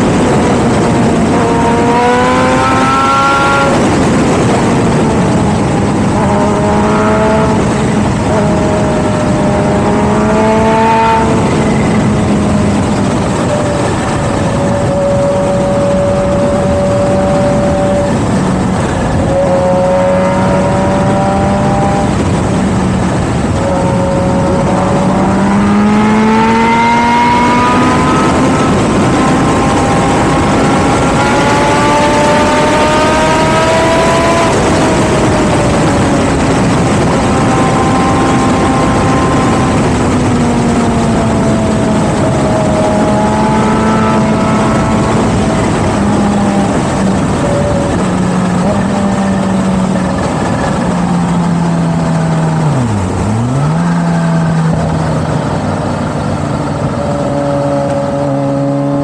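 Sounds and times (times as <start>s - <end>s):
motorcycle engine accelerating: 0.0s - 59.0s
wind noise on microphone: 0.0s - 59.0s.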